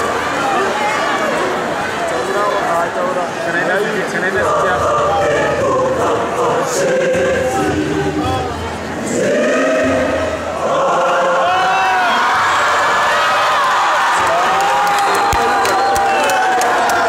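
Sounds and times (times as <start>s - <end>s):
crowd voices: 0.0s - 17.0s
large choir singing: 3.9s - 13.6s.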